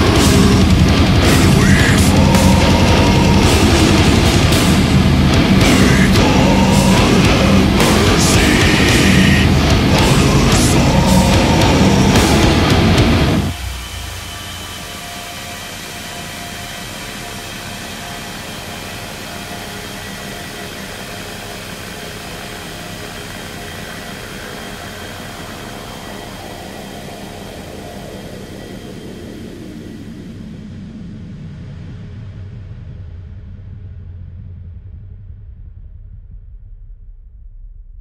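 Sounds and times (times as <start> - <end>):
distorted noise drone: 0.0 - 38.0.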